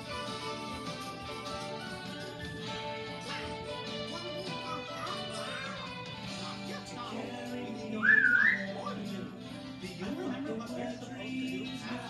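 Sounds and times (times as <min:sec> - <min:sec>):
light cartoon music: 0:00.0 - 0:12.0.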